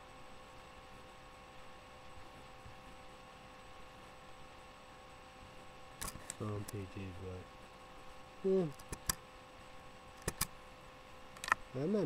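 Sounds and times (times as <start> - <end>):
low steady hum: 0.0 - 12.0
man speaking: 6.4 - 7.5
quick sharp clicks: 10.2 - 10.5.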